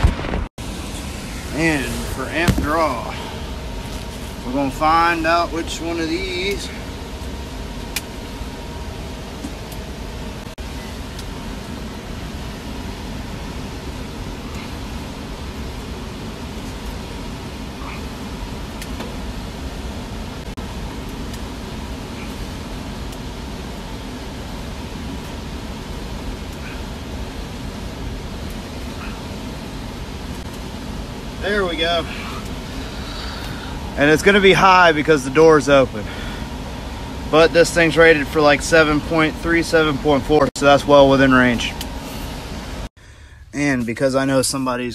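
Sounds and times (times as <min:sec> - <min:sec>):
blower motor rushing air: 0:00.0 - 0:43.7.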